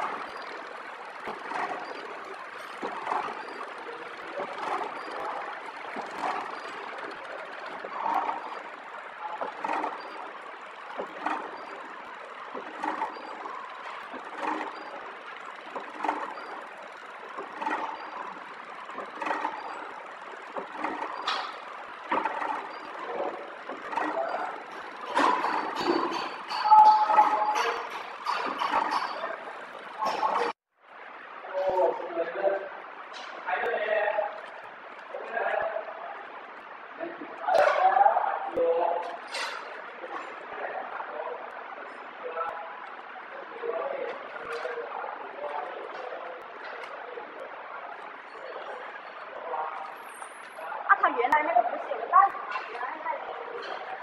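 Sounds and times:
packaging machine running: 0.0 - 30.6.

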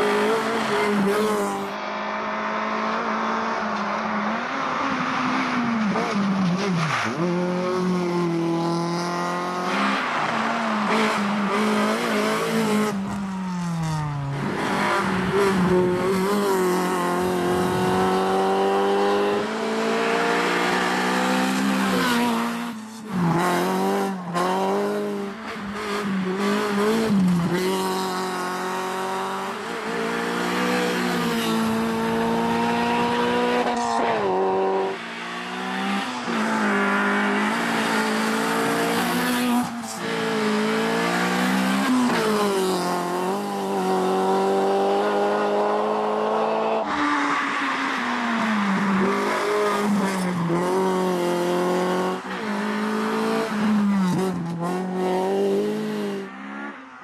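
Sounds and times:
rally car engine revving: 0.0 - 56.8.

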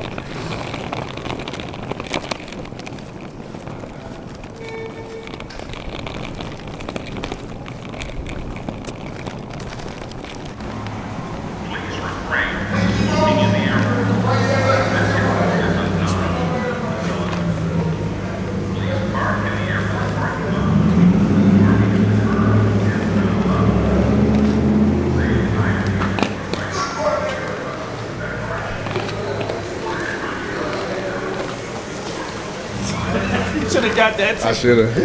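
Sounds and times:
suitcase wheels rattling on pavement: 0.0 - 35.0.

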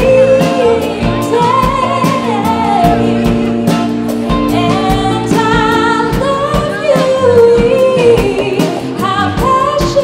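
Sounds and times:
electric guitars: 0.0 - 10.0
keyboard: 0.0 - 10.0
steady drum beat: 0.0 - 10.0
woman singing: 0.0 - 10.0.

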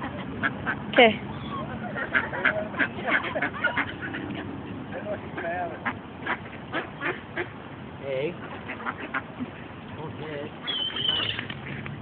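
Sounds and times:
ducks quacking: 0.0 - 12.0.

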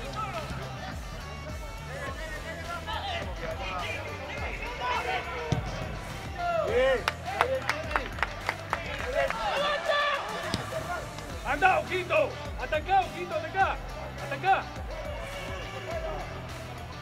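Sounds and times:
background music: 0.0 - 17.0
players calling and shouting: 0.0 - 17.0.

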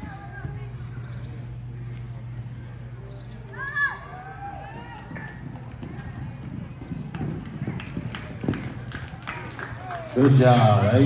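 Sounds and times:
horse galloping on dirt: 4.2 - 11.0.

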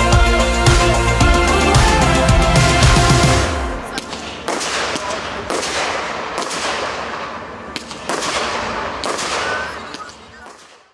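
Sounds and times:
fireworks reports with hiss: 3.8 - 10.8.

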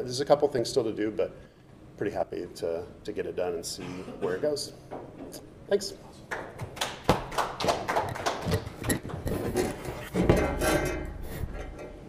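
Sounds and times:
audience applause: 6.4 - 8.8.

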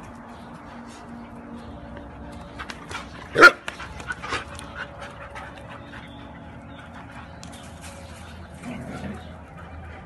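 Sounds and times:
dog barking: 3.4 - 3.6.

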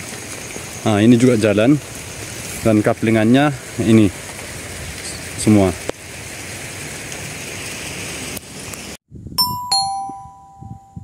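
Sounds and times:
outdoor background hiss: 0.0 - 10.9
two-note ding-dong chime: 9.4 - 11.0.

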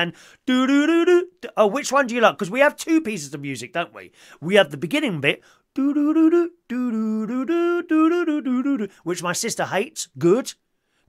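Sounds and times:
man humming a wordless tune: 5.7 - 9.1.

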